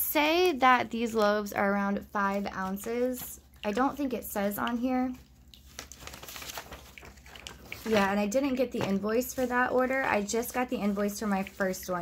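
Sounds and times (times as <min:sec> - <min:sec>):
plastic bag crinkling: 0:05.2 - 0:11.0.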